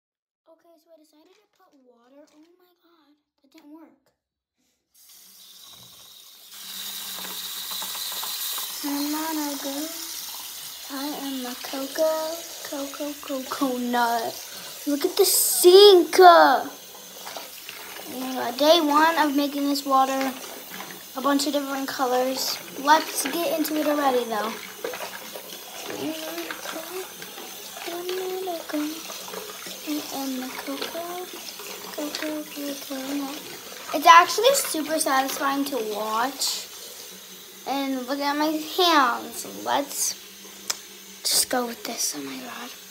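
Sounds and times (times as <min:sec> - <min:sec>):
tap running into a sink: 0:05.1 - 0:15.4, 0:16.7 - 0:39.2, 0:40.2 - 0:41.4.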